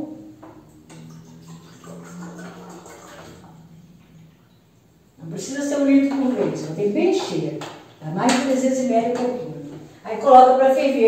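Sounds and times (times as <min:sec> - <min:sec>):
water pouring into cup: 0:00.6 - 0:05.2.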